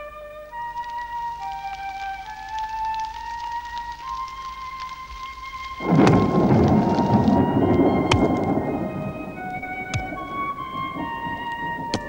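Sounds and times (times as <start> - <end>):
soft flute melody: 0.0 - 12.0
heavy rain downpour: 0.4 - 12.0
thunder cracks: 5.7 - 12.0.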